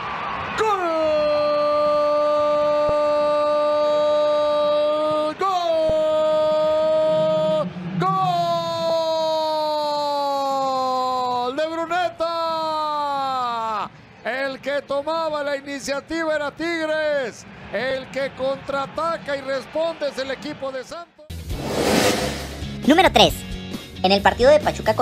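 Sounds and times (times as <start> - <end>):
commentator shouting goal cry: 0.6 - 13.6.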